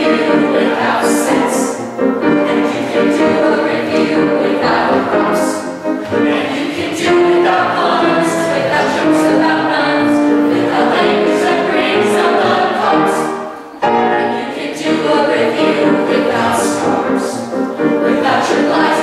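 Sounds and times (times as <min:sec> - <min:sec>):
vocal ensemble singing in harmony: 0:00.0 - 0:19.0.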